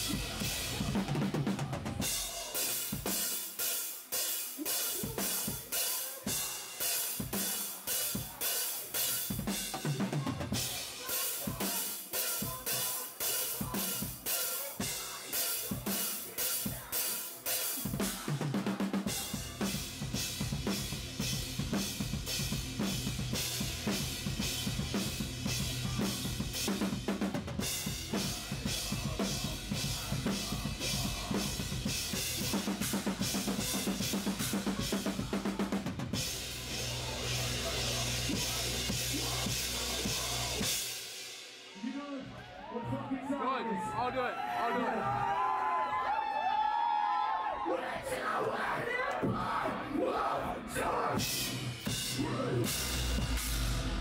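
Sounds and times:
rock drum kit played fast: 0.0s - 42.0s, 50.5s - 54.0s.

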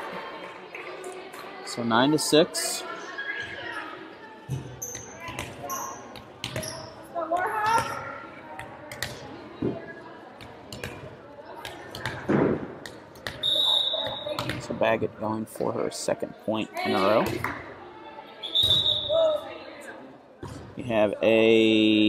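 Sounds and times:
voices in a hall: 0.0s - 22.0s
referee's whistle: 13.4s - 14.4s, 18.4s - 19.4s.

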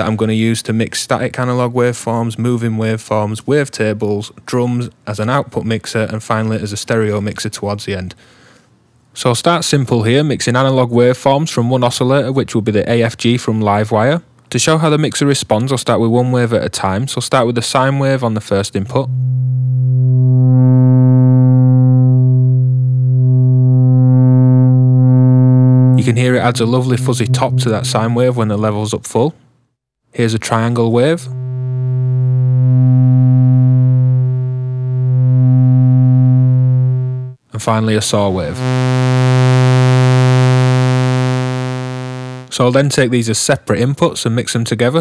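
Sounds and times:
distorted low sine tone: 18.8s - 28.8s, 30.4s - 37.4s, 38.5s - 42.6s.

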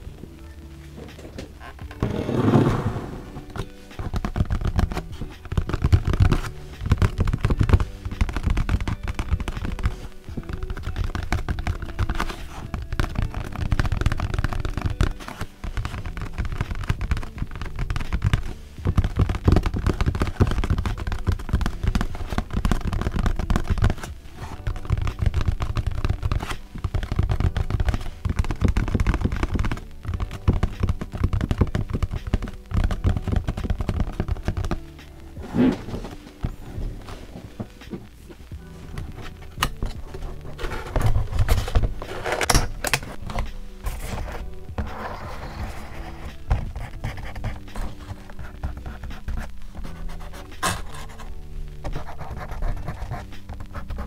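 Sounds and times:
fingertips tapping cardboard box: 1.8s - 37.0s, 37.6s - 54.0s.

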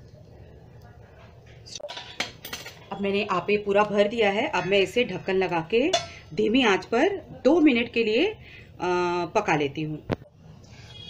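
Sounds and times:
spoon clinking and scraping a pan: 1.8s - 3.0s, 5.9s - 6.2s.

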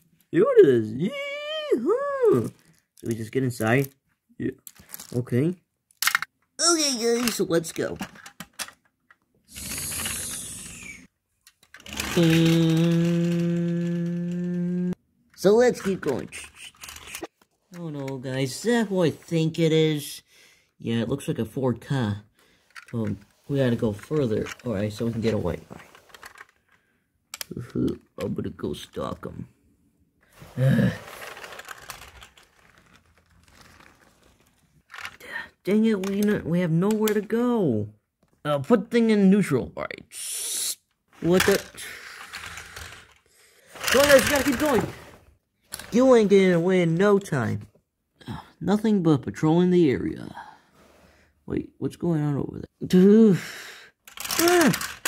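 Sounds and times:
toy car wheels rolling on carpet: 9.5s - 17.3s, 30.4s - 35.2s, 41.2s - 46.7s, 54.1s - 55.0s.

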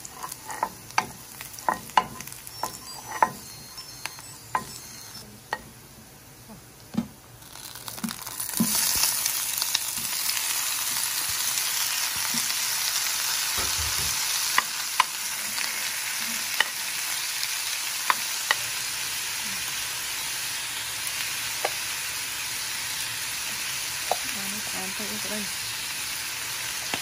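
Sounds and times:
food sizzling in hot oil: 0.0s - 5.7s, 7.4s - 27.0s.

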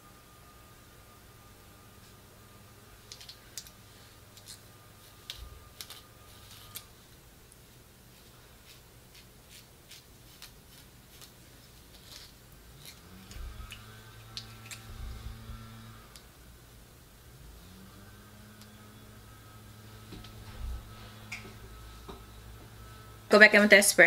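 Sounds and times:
low steady hum: 0.0s - 24.0s
comb and nails clicking in hair: 3.0s - 4.6s, 5.2s - 6.9s, 8.6s - 16.3s.

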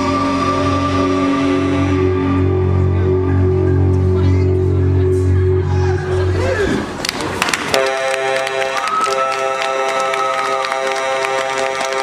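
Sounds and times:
live rock band holding a chord: 0.0s - 6.3s
audience clapping: 7.0s - 12.0s.

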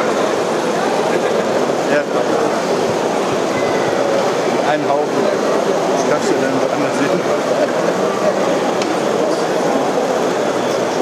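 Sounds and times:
chatter of many people: 0.0s - 11.0s.

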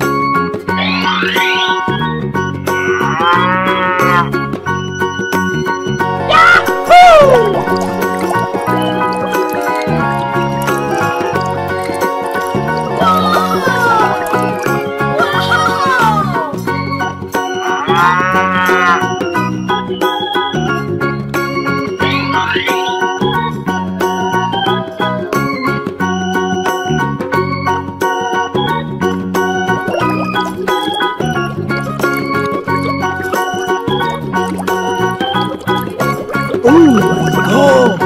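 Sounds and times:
background music: 0.0s - 38.0s
cow mooing: 2.8s - 4.3s.

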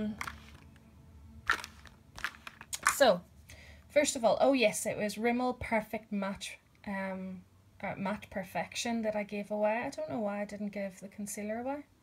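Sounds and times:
plastic tubes clicking together: 1.5s - 3.0s.

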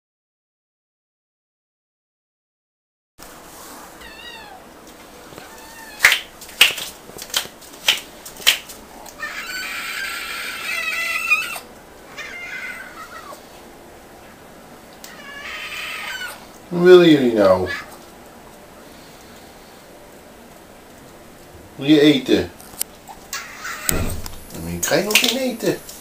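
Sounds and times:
kittens meowing: 4.0s - 4.7s, 5.4s - 6.3s, 9.2s - 13.4s, 15.0s - 16.5s, 17.4s - 18.0s, 23.3s - 24.2s.

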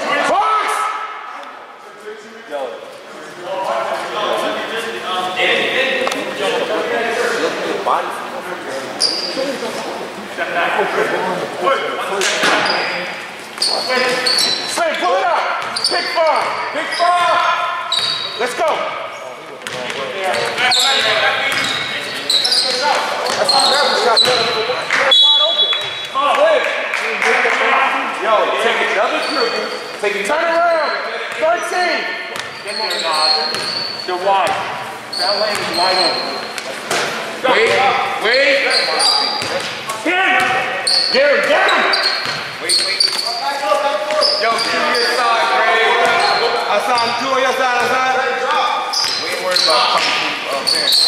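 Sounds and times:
players shouting: 0.0s - 1.4s, 40.0s - 50.2s
sneaker squeaks: 9.0s - 9.6s, 12.4s - 14.9s, 15.5s - 18.8s, 19.6s - 26.2s, 29.0s - 51.0s
basketball dribbling: 42.0s - 42.6s.

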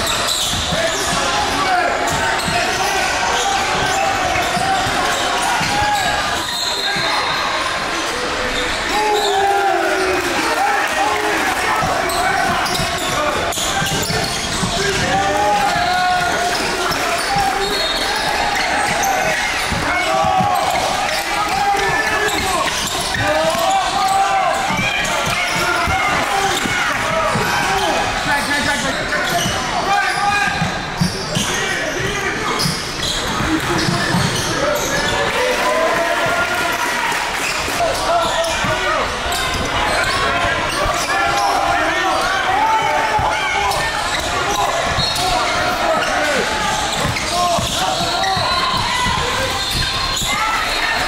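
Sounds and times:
voices of players and spectators: 0.0s - 51.0s.

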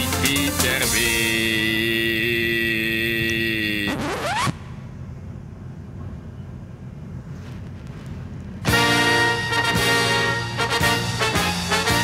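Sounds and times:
music with long held chords: 0.0s - 2.7s, 8.6s - 12.0s.

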